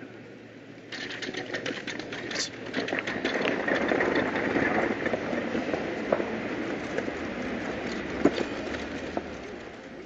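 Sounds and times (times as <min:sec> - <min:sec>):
vehicle engine clattering: 0:00.9 - 0:09.9.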